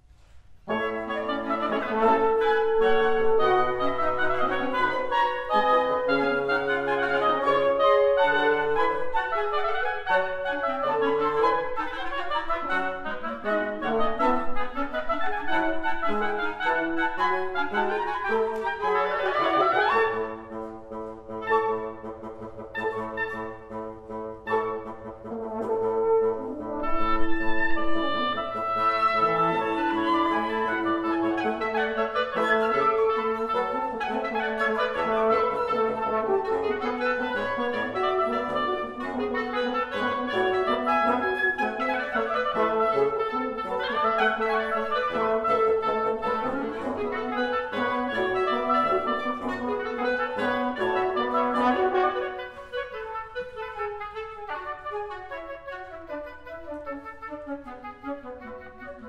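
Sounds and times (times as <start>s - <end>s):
wind quintet playing classical piece: 0.1s - 59.0s.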